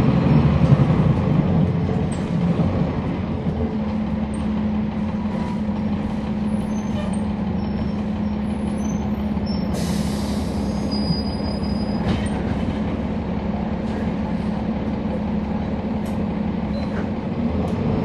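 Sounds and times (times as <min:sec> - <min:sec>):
bus diesel engine running: 0:00.0 - 0:18.0.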